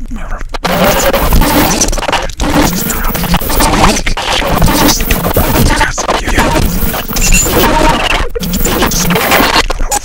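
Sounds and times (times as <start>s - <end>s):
harsh noise music: 0.5s - 9.6s.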